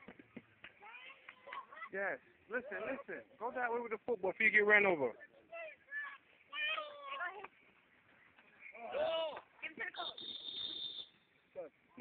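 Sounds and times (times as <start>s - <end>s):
high whistle blast: 10.0s - 11.3s.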